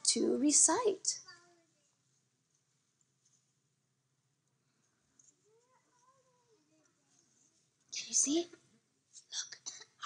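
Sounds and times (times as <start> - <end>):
faint high voice: 0.8 - 2.0, 5.3 - 7.4.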